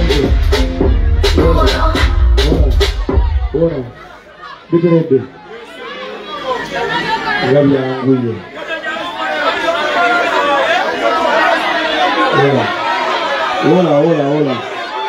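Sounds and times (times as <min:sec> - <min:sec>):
crowd chatter: 0:00.0 - 0:15.0
man speaking into a microphone: 0:04.7 - 0:05.4, 0:07.4 - 0:08.5, 0:13.6 - 0:14.6.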